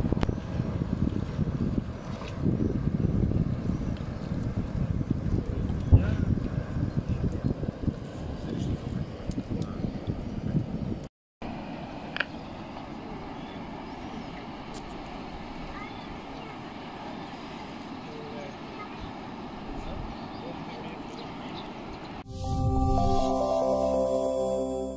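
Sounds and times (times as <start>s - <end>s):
gusty low rumbling: 0.0s - 11.1s
steady even noise: 22.2s - 24.9s.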